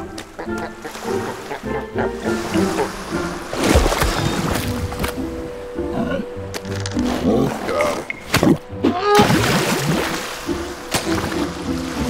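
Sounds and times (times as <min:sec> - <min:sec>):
cartoon background music: 0:00.0 - 0:12.0.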